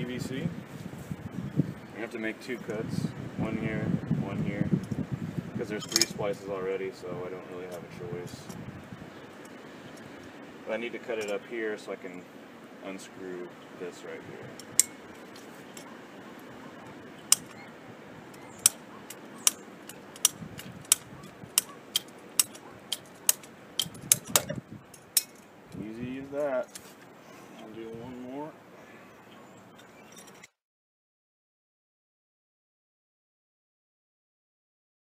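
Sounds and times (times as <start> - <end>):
pipe cutter ratchet clicks: 18.4 - 24.5
strained cutter binding: 18.4 - 25.4.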